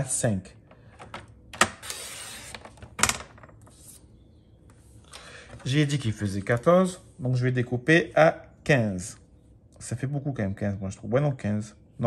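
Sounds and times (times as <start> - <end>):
blade scraping through card: 1.8 - 2.6.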